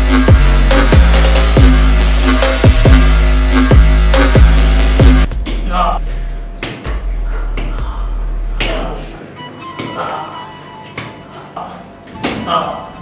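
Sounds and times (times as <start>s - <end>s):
electronic dance music with heavy bass: 0.0s - 5.3s.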